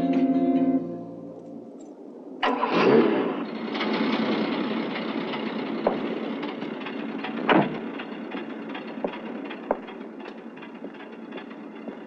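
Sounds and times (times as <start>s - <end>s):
car engine starting and running: 2.4s - 12.0s.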